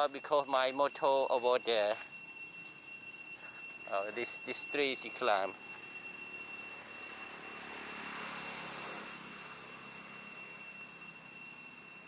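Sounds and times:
insects whining: 0.0s - 12.0s
distant engine rushing: 6.4s - 11.8s.

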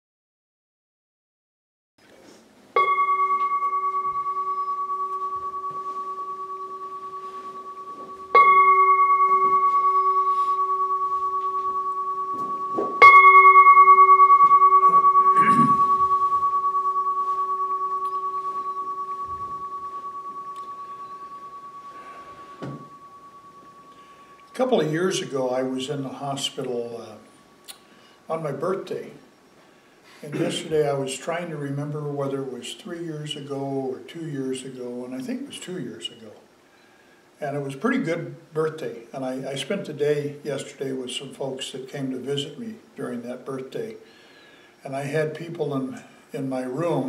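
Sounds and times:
singing bowl ringing: 2.7s - 28.5s.

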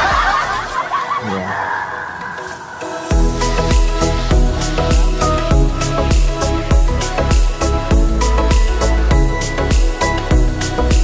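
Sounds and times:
man snickering: 0.9s - 1.6s.

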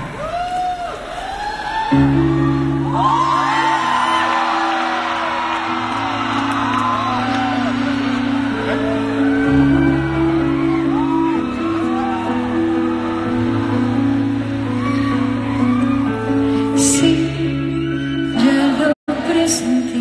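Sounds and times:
audience whooping and shouting: 0.0s - 18.6s
keyboard playing sustained chords: 2.0s - 18.9s.

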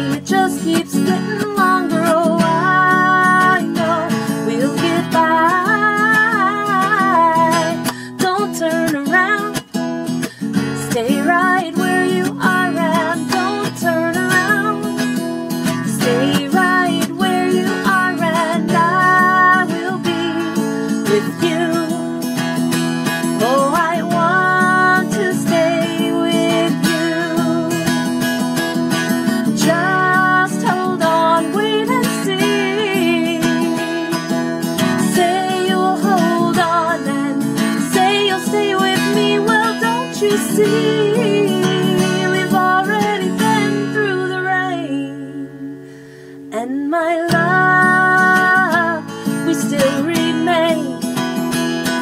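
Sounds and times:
strummed acoustic guitar: 0.0s - 52.0s.

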